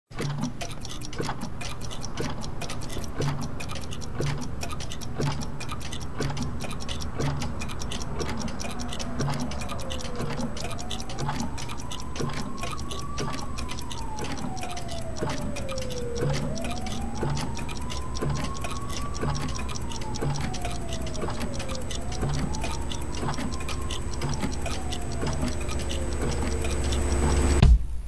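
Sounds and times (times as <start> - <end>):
clocks ticking: 0.1 - 27.6.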